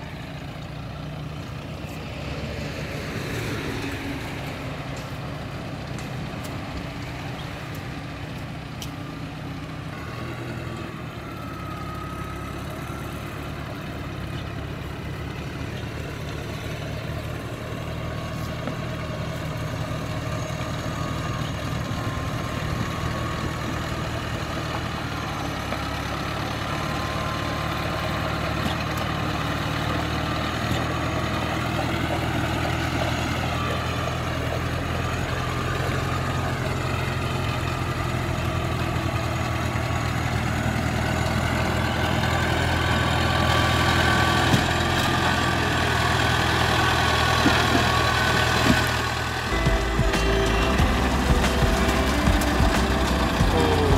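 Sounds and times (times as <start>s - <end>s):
tracked vehicle engine running: 0.0s - 53.9s.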